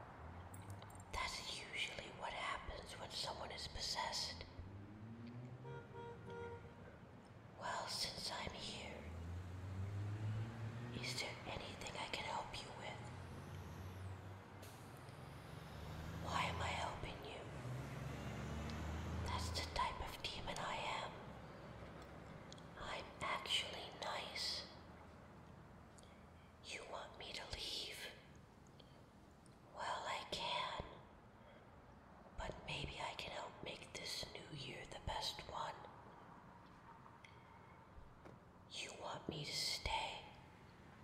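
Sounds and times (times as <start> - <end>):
woman whispering: 1.0 - 4.5, 7.6 - 9.2, 10.9 - 13.2, 16.2 - 17.6, 19.2 - 21.6, 22.7 - 24.8, 26.6 - 28.3, 29.7 - 31.1, 32.4 - 36.1, 38.7 - 40.5.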